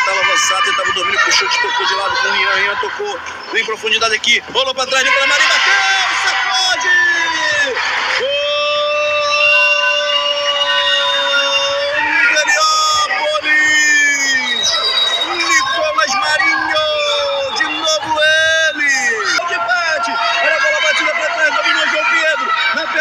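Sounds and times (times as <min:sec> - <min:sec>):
crowd noise: 0:00.0 - 0:23.0
man shouting goal: 0:04.8 - 0:14.5, 0:15.3 - 0:23.0.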